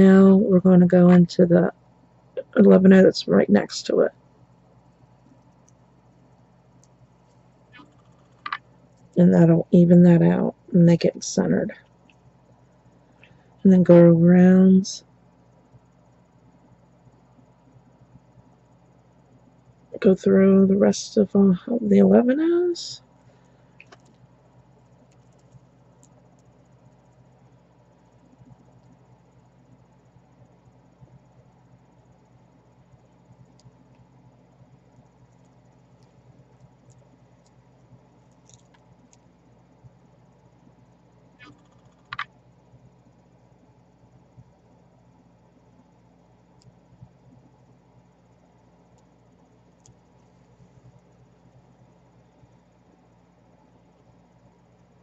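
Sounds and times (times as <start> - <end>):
low steady hum: 0.0 - 55.0.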